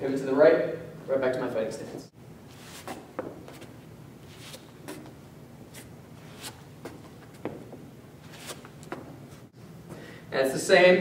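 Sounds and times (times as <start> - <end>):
sneakers scuffing on hard floor: 2.5 - 9.5.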